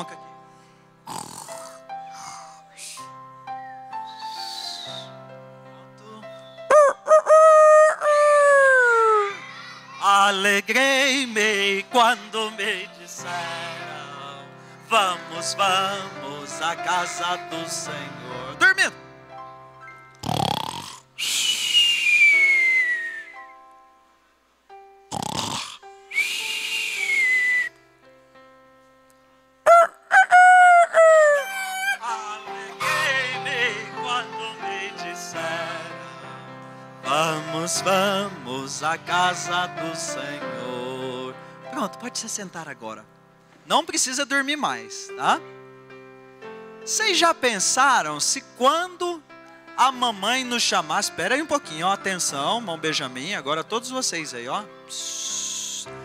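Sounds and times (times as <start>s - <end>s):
man imitating snoring: 1.0s - 2.6s, 20.2s - 21.1s, 25.1s - 25.8s
rooster crowing: 6.7s - 9.3s, 29.7s - 32.0s.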